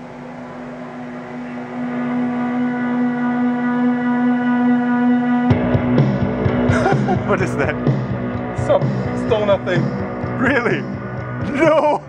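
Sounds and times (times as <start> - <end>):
sustained guitar chord: 0.0 - 12.0
heavy rock music from vinyl: 5.4 - 12.0
bass and drums: 5.5 - 12.0.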